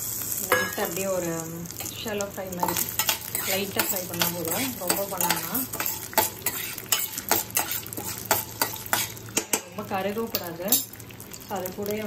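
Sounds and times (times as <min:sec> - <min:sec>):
spoon scraping a metal pan: 0:02.6 - 0:09.6.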